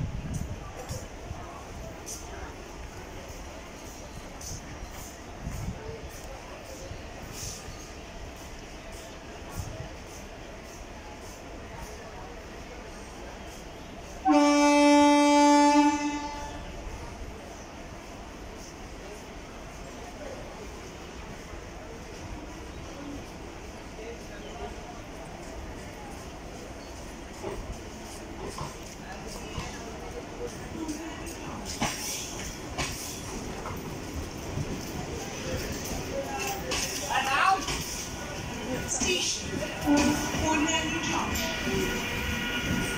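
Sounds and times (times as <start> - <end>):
train wheels rumbling on rails: 0.0 - 42.9
train horn blast: 14.2 - 16.8, 39.8 - 40.7.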